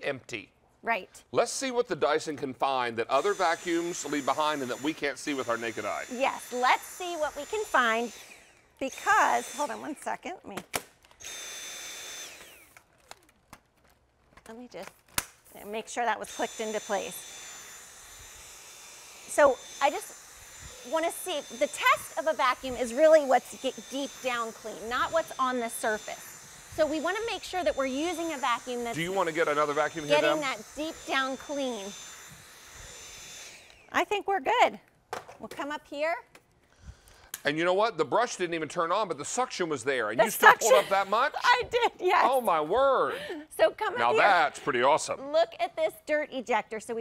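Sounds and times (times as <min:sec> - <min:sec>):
cordless vacuum motor whining: 0:03.1 - 0:10.4, 0:11.0 - 0:13.3, 0:15.8 - 0:34.4, 0:40.2 - 0:45.2
small plastic clicks: 0:12.4 - 0:15.4.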